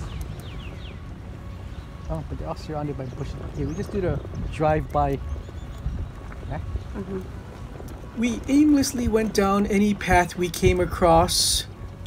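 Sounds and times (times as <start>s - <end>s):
wind and road rumble on moped: 0.0s - 12.0s.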